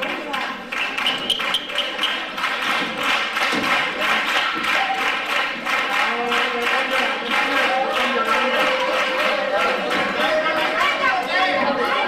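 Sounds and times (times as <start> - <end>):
rhythmic clapping: 0.0 - 12.0
voices: 3.8 - 12.0
people singing: 6.0 - 12.0.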